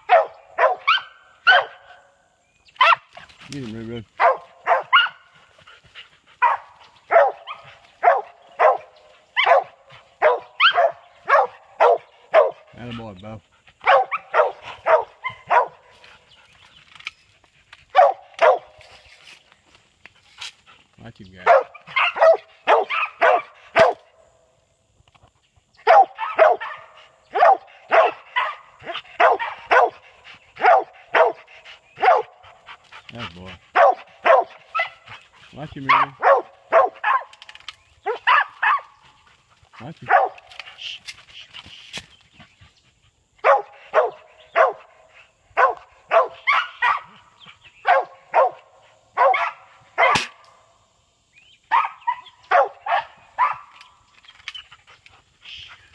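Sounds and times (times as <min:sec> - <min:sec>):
dog barking: 0:00.0 - 0:02.0, 0:02.8 - 0:03.1, 0:04.2 - 0:05.3, 0:06.4 - 0:12.7, 0:13.8 - 0:15.8, 0:17.9 - 0:18.8, 0:21.4 - 0:24.1, 0:25.8 - 0:30.0, 0:30.6 - 0:32.4, 0:33.7 - 0:35.2, 0:35.8 - 0:37.3, 0:38.0 - 0:38.9, 0:40.1 - 0:40.4, 0:43.4 - 0:47.2, 0:47.8 - 0:50.4, 0:51.7 - 0:53.8
dog barking sharply: 0:18.0 - 0:18.7, 0:33.8 - 0:34.9, 0:49.2 - 0:50.4, 0:51.7 - 0:53.7.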